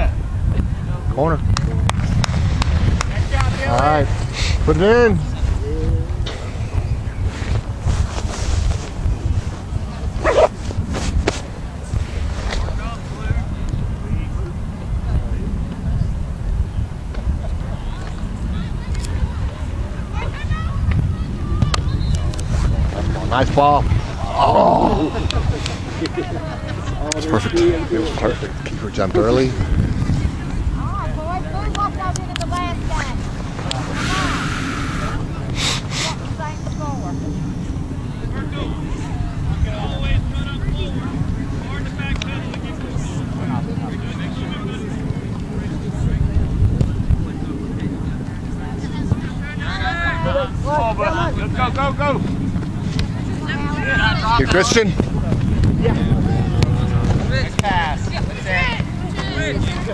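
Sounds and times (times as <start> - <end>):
faint indistinct voices: 0.0 - 59.9
wind rumbling on microphone: 0.0 - 59.9
rush of hiss: 33.9 - 36.2.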